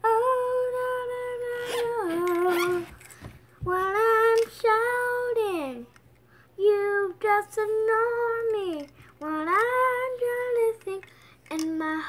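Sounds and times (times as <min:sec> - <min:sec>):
child singing unaccompanied: 0:06.6 - 0:12.0.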